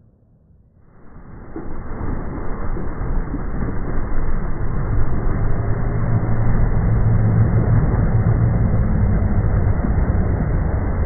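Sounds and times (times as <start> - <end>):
deep low rumble: 0.0 - 11.0
water rushing and churning: 0.9 - 8.7.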